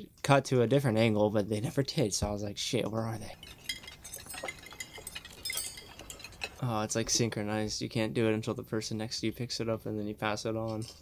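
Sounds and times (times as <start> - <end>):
cutlery clinking on plates: 3.3 - 6.7.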